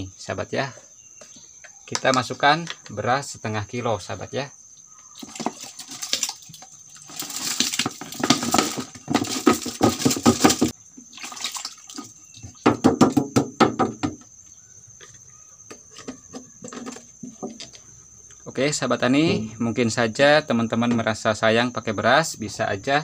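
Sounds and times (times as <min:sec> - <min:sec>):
dripping: 0:05.2 - 0:12.6
water pouring and splashing: 0:05.2 - 0:12.6.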